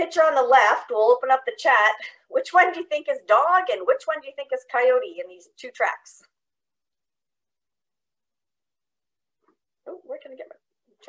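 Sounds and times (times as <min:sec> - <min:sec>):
woman speaking: 0:00.0 - 0:06.3, 0:09.8 - 0:10.7.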